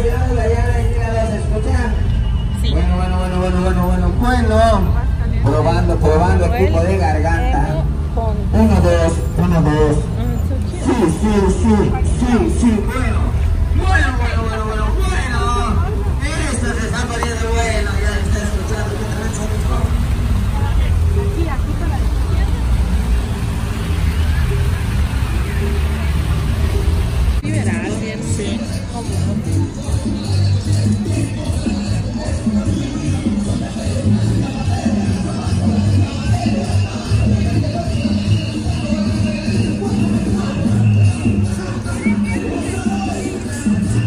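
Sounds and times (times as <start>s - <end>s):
voices of people: 0.0s - 44.0s
music: 11.2s - 44.0s
fountain water splashing: 17.6s - 27.4s.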